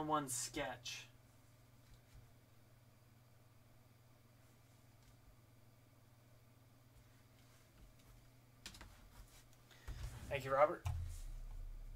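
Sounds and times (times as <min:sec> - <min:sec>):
faint hum: 0:00.0 - 0:11.9.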